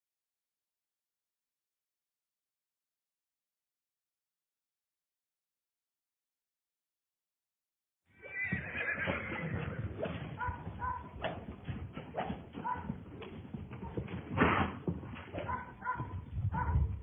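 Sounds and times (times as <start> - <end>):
horse hooves thudding on dirt: 8.5 - 17.0.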